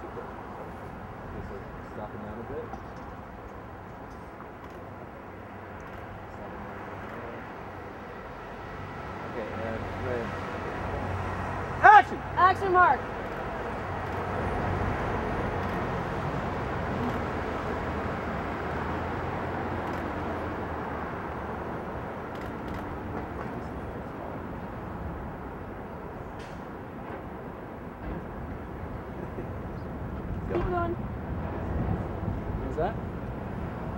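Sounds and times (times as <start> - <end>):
outdoor rumble and hiss: 0.0 - 33.9.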